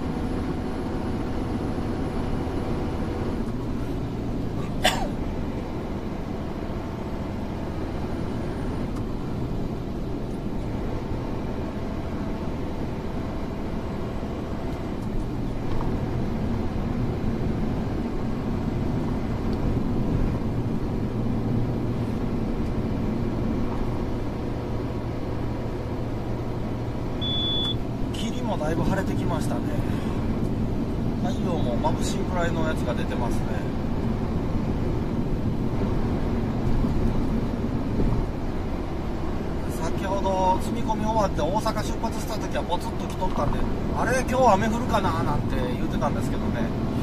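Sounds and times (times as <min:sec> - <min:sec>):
constant low hum: 0:00.0 - 0:47.0
truck engine and road noise: 0:00.0 - 0:47.0
short high beep: 0:27.2 - 0:27.8.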